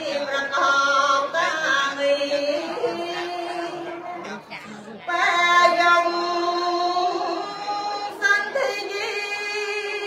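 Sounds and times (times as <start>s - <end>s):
woman singing into microphone: 0.0s - 4.2s, 5.0s - 10.0s.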